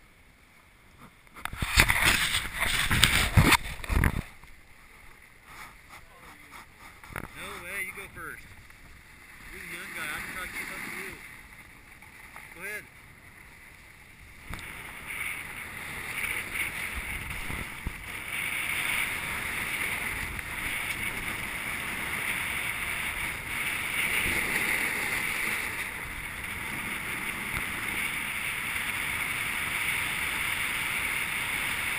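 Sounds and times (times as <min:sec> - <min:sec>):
snowboard sliding over snow: 0:00.0 - 0:31.9
wind on camera microphone: 0:01.3 - 0:04.4, 0:14.4 - 0:31.9
voices: 0:05.9 - 0:08.5, 0:09.4 - 0:11.3.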